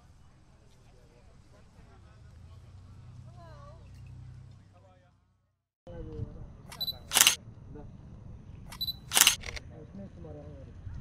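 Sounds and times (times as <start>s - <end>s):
camera focus beep: 6.7s - 7.4s, 8.7s - 9.6s
camera shutter click: 6.7s - 7.4s, 8.7s - 9.6s.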